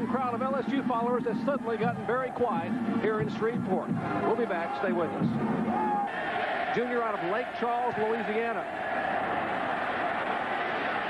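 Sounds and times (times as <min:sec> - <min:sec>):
stadium crowd cheering: 0:00.0 - 0:11.0.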